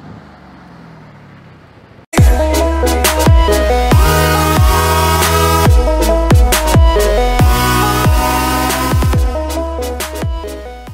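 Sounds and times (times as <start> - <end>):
car engine running: 0.2 - 10.6.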